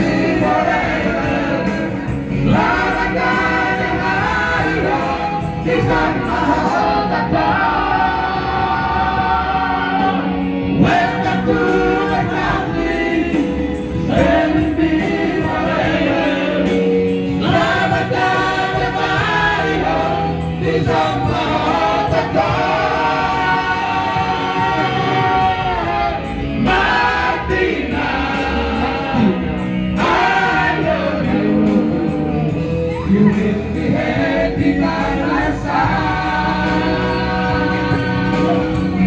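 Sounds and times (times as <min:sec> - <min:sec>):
backing music: 0:00.0 - 0:39.0
men singing together: 0:00.0 - 0:39.0.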